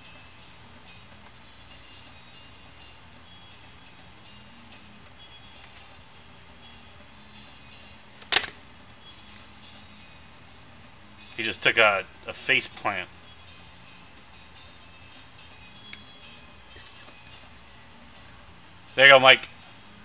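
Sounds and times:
faint background music: 0:00.0 - 0:20.0
sharp click: 0:08.2 - 0:08.6.

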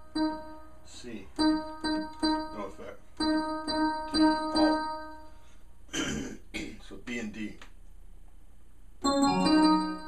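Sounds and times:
electric piano notes: 0:00.0 - 0:05.4, 0:09.0 - 0:10.0
man clearing his throat: 0:05.9 - 0:06.8.

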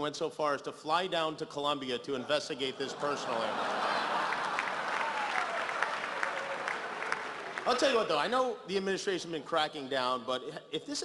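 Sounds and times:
large audience applauding: 0:03.3 - 0:08.2.

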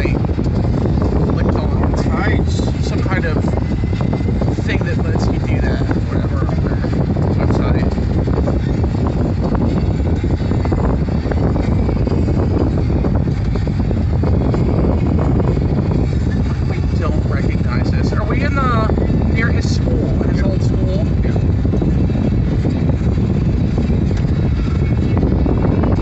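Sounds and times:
car cabin road rumble: 0:00.0 - 0:26.0.

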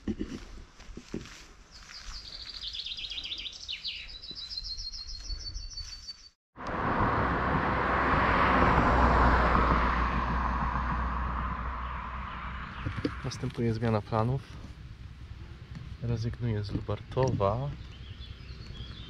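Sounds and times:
songbird singing: 0:01.6 - 0:06.4, 0:11.0 - 0:19.0
wind noise with low rumble: 0:06.6 - 0:19.0.

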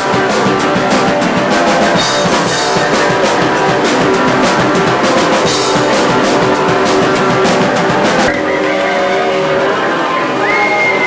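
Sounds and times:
drum hit: 0:00.0 - 0:08.5
distorted electric guitars: 0:00.0 - 0:11.0.

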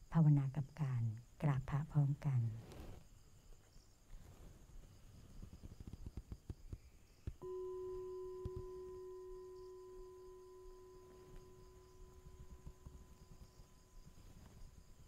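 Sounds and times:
singing bowl ringing: 0:07.4 - 0:15.0.

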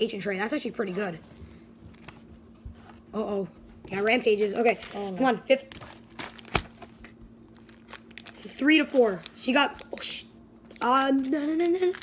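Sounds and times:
foil wrapper crinkling: 0:04.2 - 0:12.0.

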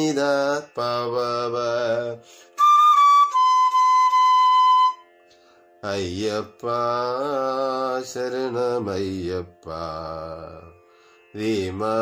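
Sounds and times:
man singing: 0:00.0 - 0:02.3, 0:05.8 - 0:12.0.

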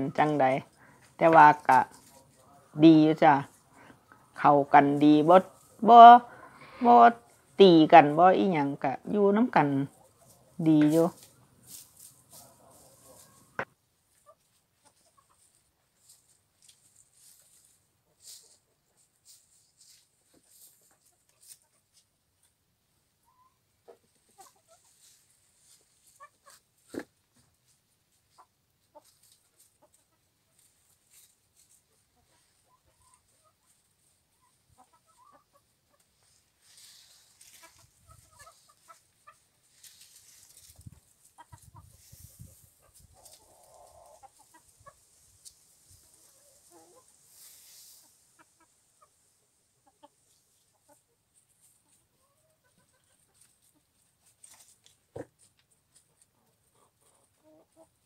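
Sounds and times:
rustling in dry leaves: 0:10.1 - 0:22.1, 0:24.3 - 0:26.9, 0:27.6 - 0:35.3, 0:36.2 - 0:49.1
hens clucking softly: 0:12.2 - 0:45.3, 0:45.9 - 0:58.0.

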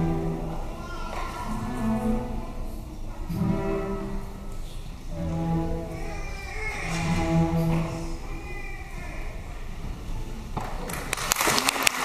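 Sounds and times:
cellos bowing low note: 0:00.0 - 0:08.3
orchestra playing softly: 0:00.0 - 0:10.6.

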